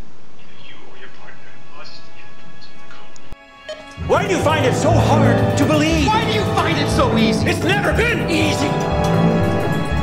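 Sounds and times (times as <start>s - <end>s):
background music: 2.0s - 10.0s.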